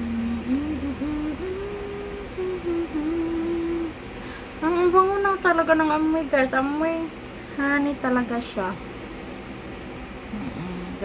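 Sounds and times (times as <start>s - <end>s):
woman humming: 0.0s - 5.9s, 10.3s - 11.0s.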